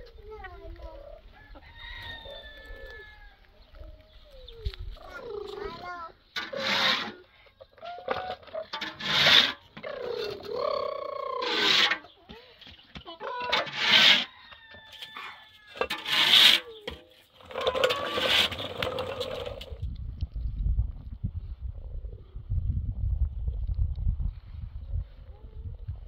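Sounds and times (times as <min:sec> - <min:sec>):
wind rumble on microphone: 0:00.0 - 0:05.3, 0:19.2 - 0:26.0
blocks scraping over concrete: 0:06.4 - 0:07.3, 0:08.0 - 0:12.4, 0:13.0 - 0:19.9
toy skateboard wheels rolling: 0:07.8 - 0:12.1, 0:13.4 - 0:14.3, 0:15.2 - 0:19.9.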